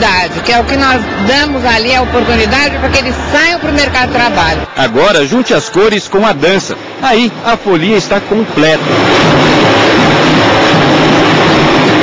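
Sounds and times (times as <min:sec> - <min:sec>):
voices: 0:00.0 - 0:08.8
drums and percussion: 0:06.9 - 0:12.0.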